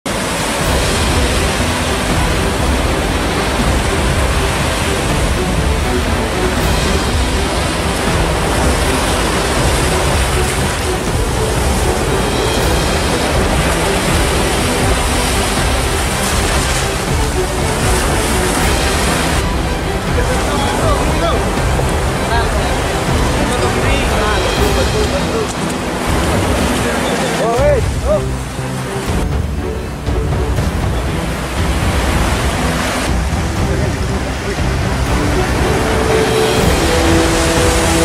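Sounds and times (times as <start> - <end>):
background music: 0.0 - 38.0
waves breaking on beach: 0.0 - 38.0.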